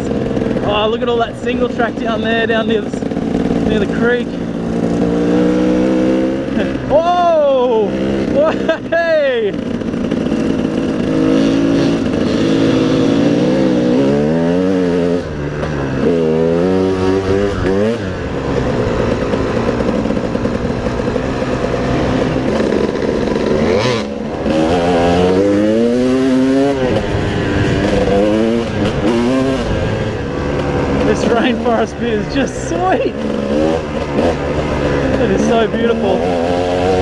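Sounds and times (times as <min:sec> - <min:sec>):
dirt bike engine revving: 0:00.0 - 0:37.0.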